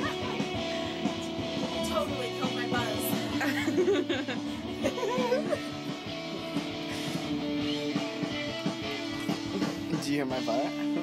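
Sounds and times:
strummed guitar chords: 0:00.0 - 0:11.0.

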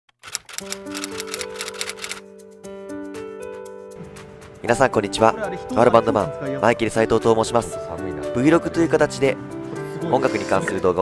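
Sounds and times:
typewriter key clicks: 0:00.1 - 0:02.2
background music with held notes: 0:00.6 - 0:11.0.

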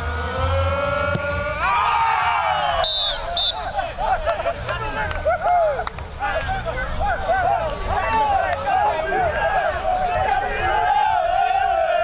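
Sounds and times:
men shouting and cheering: 0:00.0 - 0:12.0
whistle blasts: 0:02.6 - 0:03.8.

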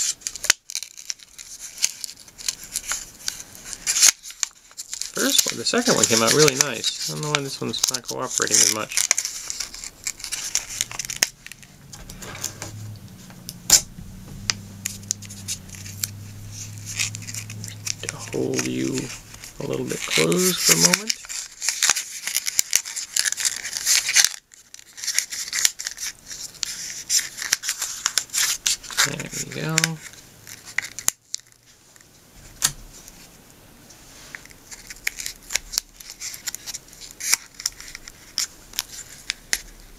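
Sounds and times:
paper crinkling and rustling: 0:00.0 - 0:12.8, 0:14.8 - 0:33.4, 0:34.0 - 0:39.9
low wordless voice: 0:17.6 - 0:21.2.

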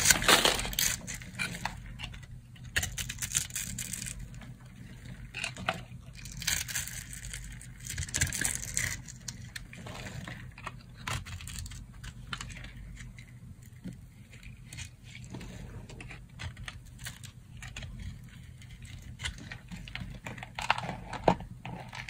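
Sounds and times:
knife crunching through dry soap: 0:00.0 - 0:01.7, 0:06.1 - 0:10.2.

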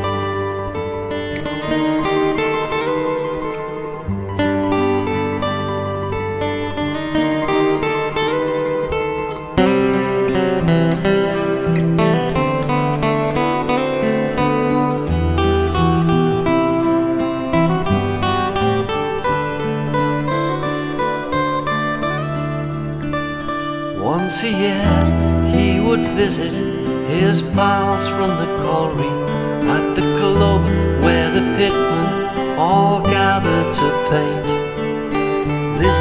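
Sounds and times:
strummed acoustic guitar: 0:00.0 - 0:36.0
bass line: 0:35.7 - 0:36.0.

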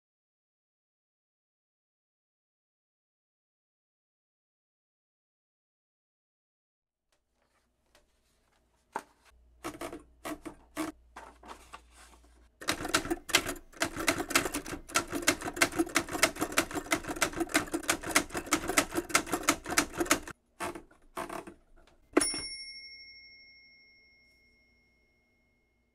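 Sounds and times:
typewriter keys striking: 0:12.6 - 0:21.6
typewriter bell ding: 0:22.1 - 0:25.8.

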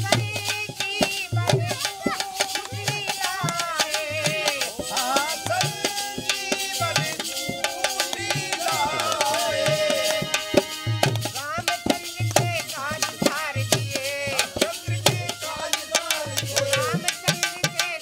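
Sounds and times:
hand drum beat: 0:00.0 - 0:18.0
harmonium: 0:00.0 - 0:18.0
wavering melody line: 0:01.7 - 0:11.2.

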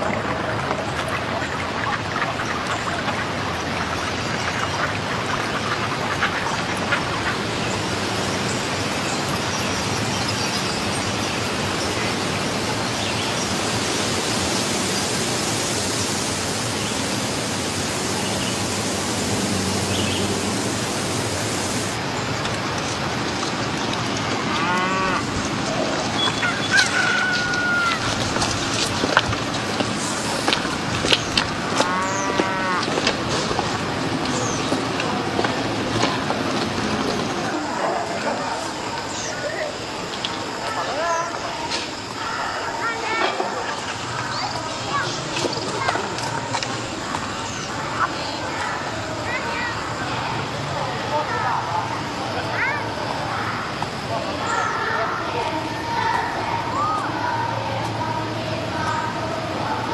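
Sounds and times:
rushing outdoor ambience: 0:00.0 - 0:59.9
farm fowl calling: 0:03.9 - 0:08.4, 0:24.4 - 0:28.5, 0:31.8 - 0:33.0.

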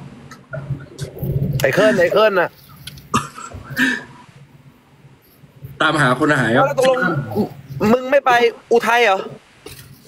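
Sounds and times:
man coughing: 0:03.1 - 0:04.2.

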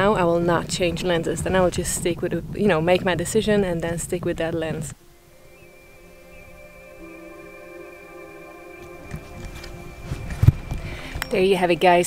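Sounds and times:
wind buffeting microphone: 0:00.0 - 0:12.0
background music: 0:04.7 - 0:12.0.

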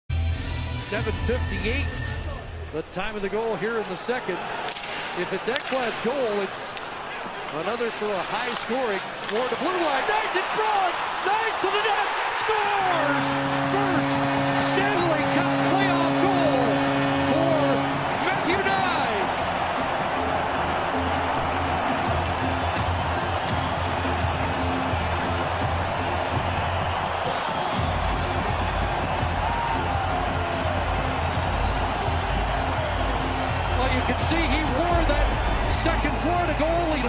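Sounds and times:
crowd cheering: 0:01.0 - 0:37.0
goal horn: 0:09.3 - 0:37.0
music with heavy beat: 0:19.6 - 0:37.0.

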